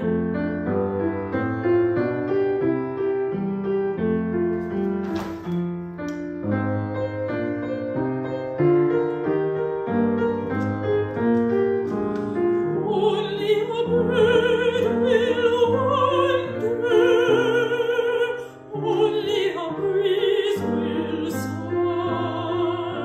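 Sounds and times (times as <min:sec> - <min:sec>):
piano playing: 0:00.0 - 0:23.0.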